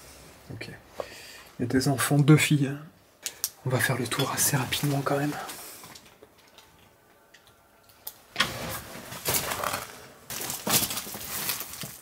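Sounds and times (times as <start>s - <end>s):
scuffing and rustling through debris: 4.1s - 6.1s, 8.4s - 12.0s.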